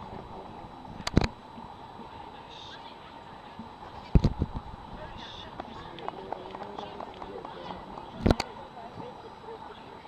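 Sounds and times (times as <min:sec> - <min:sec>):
people talking faintly: 0:00.0 - 0:10.0.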